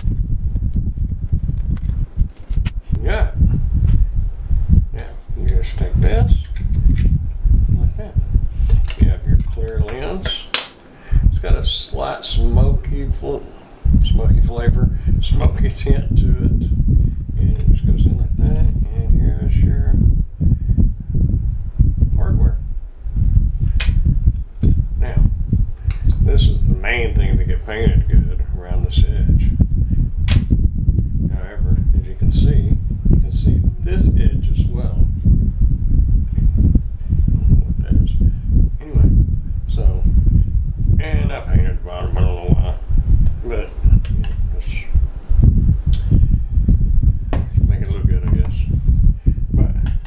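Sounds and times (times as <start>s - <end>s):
low background rumble: 0.0s - 50.0s.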